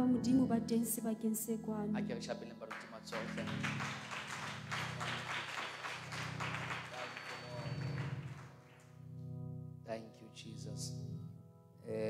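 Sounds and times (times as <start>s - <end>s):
keyboard low sustained chords: 0.0s - 12.0s
congregation applauding: 2.6s - 9.0s.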